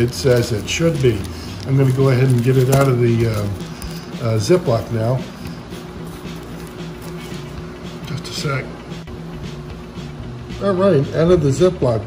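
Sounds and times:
plastic bag rustling: 0.0s - 7.7s.

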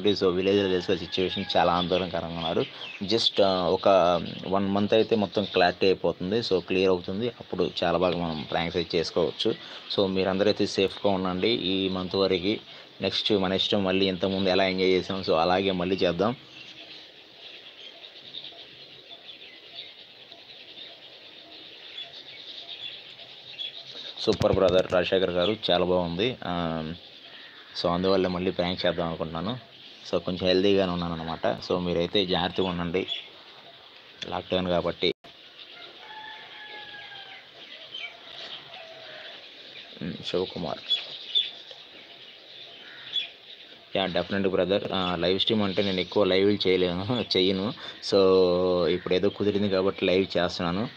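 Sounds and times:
bird chirping faintly: 0.0s - 50.9s.

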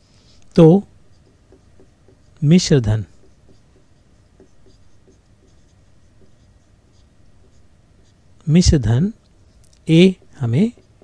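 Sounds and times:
pen scratching handwriting: 0.6s - 11.0s.

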